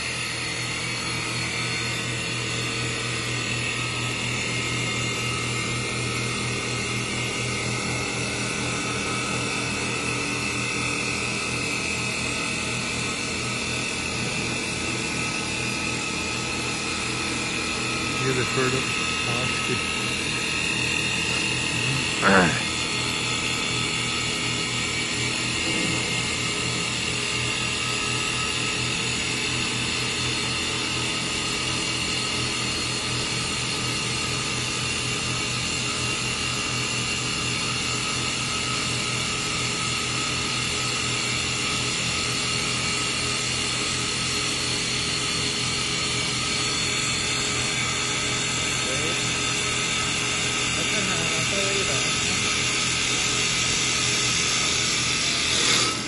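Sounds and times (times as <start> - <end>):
lathe motor and spindle whine: 0.0 - 56.0
cutters shaving wood: 54.1 - 56.0.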